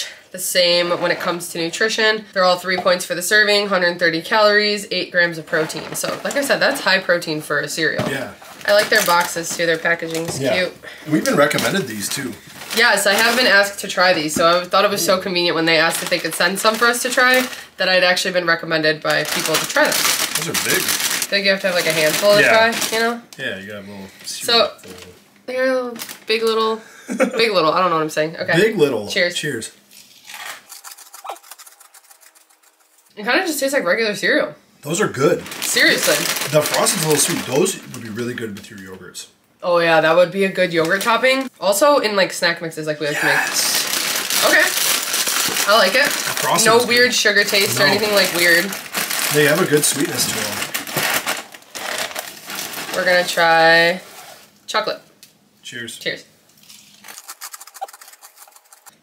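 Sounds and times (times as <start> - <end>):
people chewing crunchy cereal: 19.4 - 22.8, 29.9 - 33.1, 35.4 - 38.2, 43.1 - 52.9, 56.7 - 59.0.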